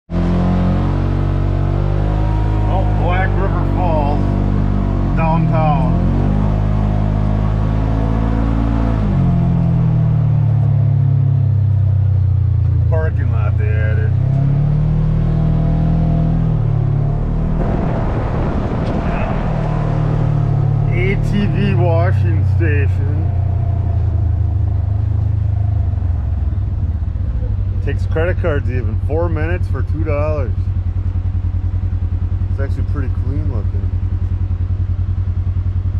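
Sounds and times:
vehicle engine revving: 0:00.1 - 0:35.9.

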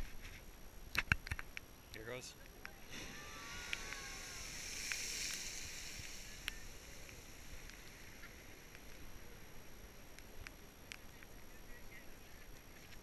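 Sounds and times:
geyser erupting with rushing hiss: 0:02.6 - 0:13.0.

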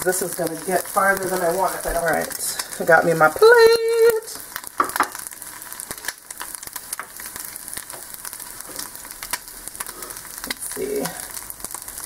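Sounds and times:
egg sizzling and popping in skillet: 0:00.0 - 0:12.0.

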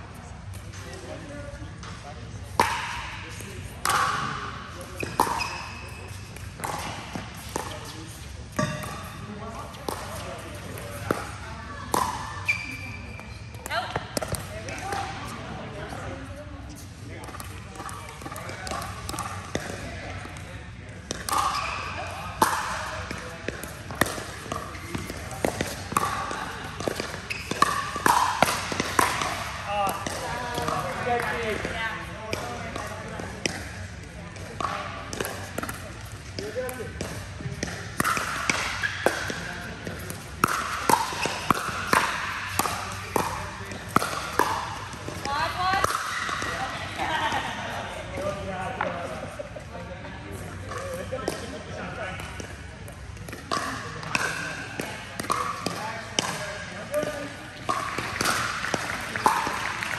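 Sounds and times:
voices talking in a hall: 0:00.0 - 0:59.9
paddles hitting plastic ball: 0:03.7 - 0:04.3, 0:09.8 - 0:12.6, 0:17.2 - 0:47.1, 0:50.7 - 0:59.9.

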